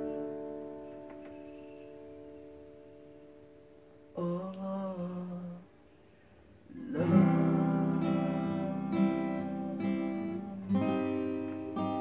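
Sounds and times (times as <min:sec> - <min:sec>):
man humming: 0:04.2 - 0:05.7, 0:06.7 - 0:11.0.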